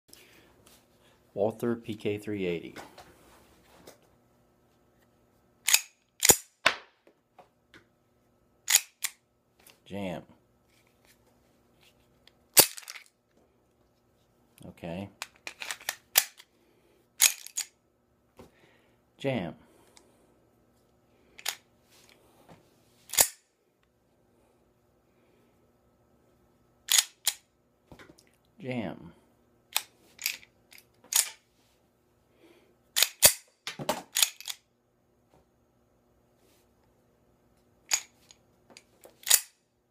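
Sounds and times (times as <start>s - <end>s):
pistol slide racking clacks: 23.1s - 23.4s, 26.9s - 27.4s, 29.8s - 31.4s, 33.0s - 33.5s, 39.2s - 39.6s.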